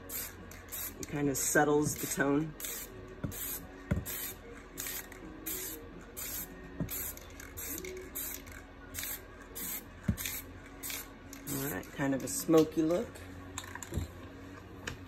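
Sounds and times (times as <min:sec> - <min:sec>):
spray paint can hissing bursts: 0:02.6 - 0:08.4.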